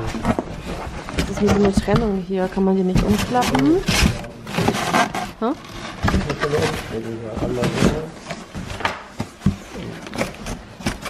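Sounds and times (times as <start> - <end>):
cardboard knocks and rustles: 0.0 - 11.0
hands scraping cardboard box: 0.0 - 11.0.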